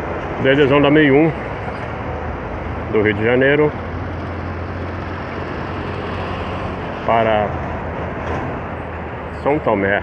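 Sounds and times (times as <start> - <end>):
cars driving by: 0.0 - 10.0
low engine hum of traffic: 0.0 - 10.0.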